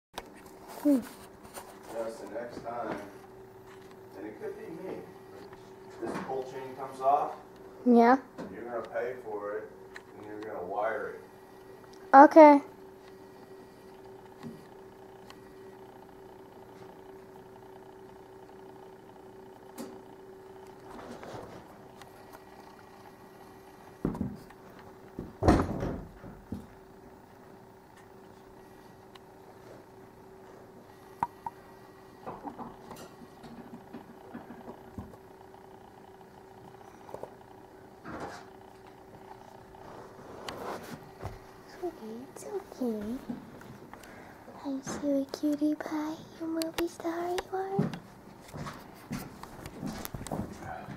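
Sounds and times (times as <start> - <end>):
steady low hum: 0.2 - 50.9.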